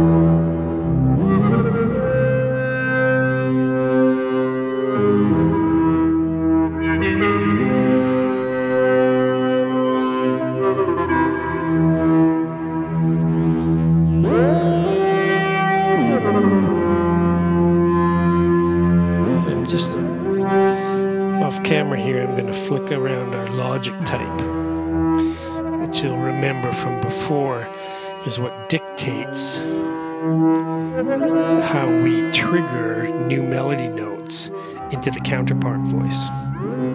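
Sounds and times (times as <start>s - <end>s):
synthesizer melody with vibrato: 0.0s - 36.9s.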